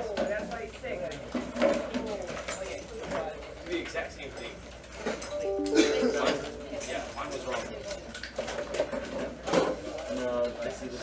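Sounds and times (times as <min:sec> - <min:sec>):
faint background chatter: 0:00.0 - 0:11.0
computer notification chime: 0:05.4 - 0:07.4.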